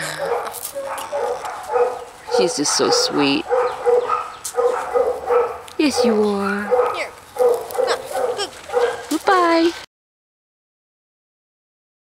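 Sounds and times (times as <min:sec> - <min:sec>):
dog barking: 0:00.1 - 0:09.2.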